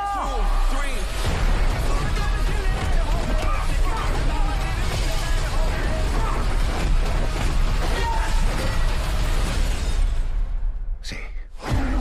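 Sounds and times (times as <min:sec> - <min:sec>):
loud dense trailer music: 0:00.1 - 0:12.0.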